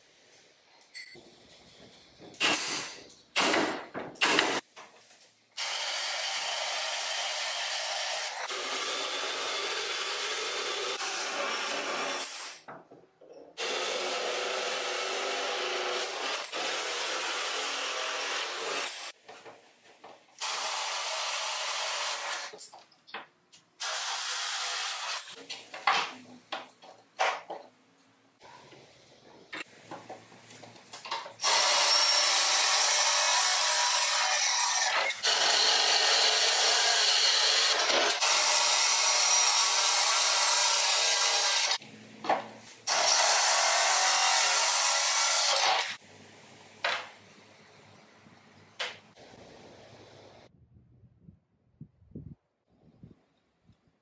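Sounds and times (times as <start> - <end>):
drill cutting through plywood: 5.6 - 12.6, 13.6 - 19.1, 20.4 - 22.5, 23.8 - 25.4, 31.4 - 41.8, 42.9 - 46.0.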